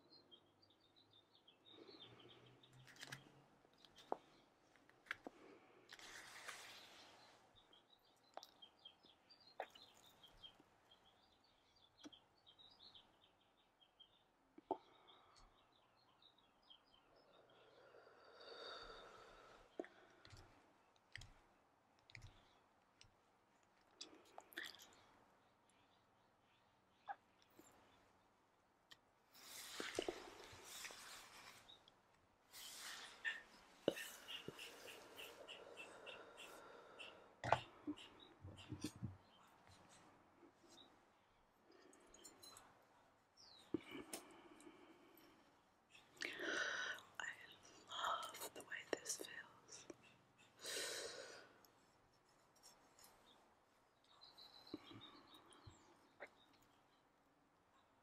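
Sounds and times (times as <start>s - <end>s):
woman whispering: 46.2s - 50.0s.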